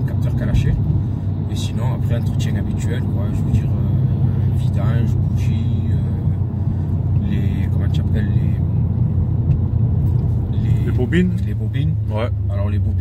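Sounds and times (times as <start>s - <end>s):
car engine cruising: 0.0s - 13.0s
road noise: 0.0s - 13.0s.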